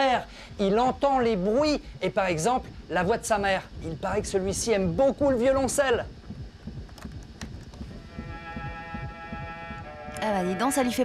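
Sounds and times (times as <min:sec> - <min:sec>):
held cello note through small speaker: 0:07.9 - 0:11.0.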